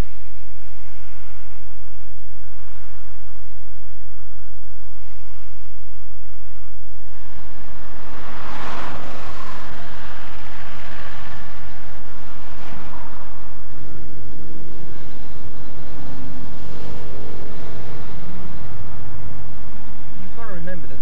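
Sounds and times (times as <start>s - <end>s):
car road and engine noise: 0.0s - 21.0s
steady low hum: 0.0s - 21.0s
swish of passing vehicles: 4.9s - 21.0s.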